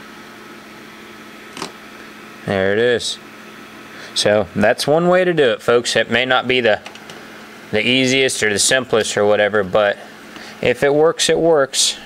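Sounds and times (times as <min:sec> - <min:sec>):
faint steady whine: 0:00.0 - 0:12.0
low room hum: 0:00.0 - 0:12.0.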